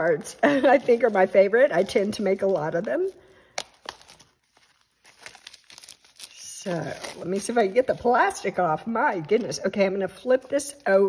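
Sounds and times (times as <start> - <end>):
plastic wrap crinkling: 0.0 - 11.0.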